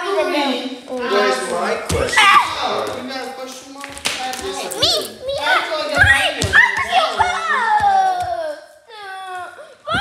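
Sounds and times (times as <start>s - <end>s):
children calling excitedly: 0.0s - 2.9s, 4.2s - 10.0s.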